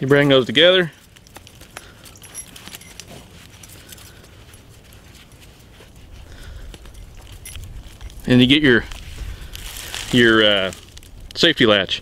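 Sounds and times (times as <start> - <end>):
trap chain clinking and rattling: 0.0 - 11.0.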